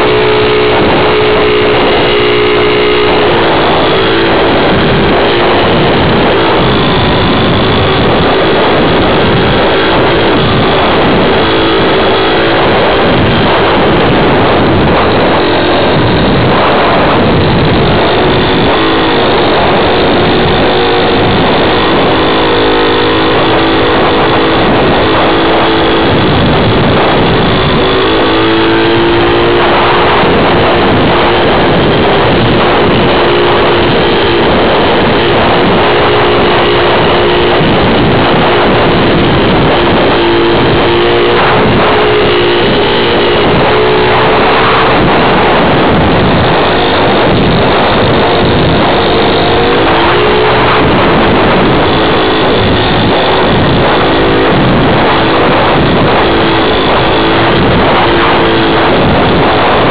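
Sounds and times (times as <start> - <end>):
wind rush: 0.0 - 59.9.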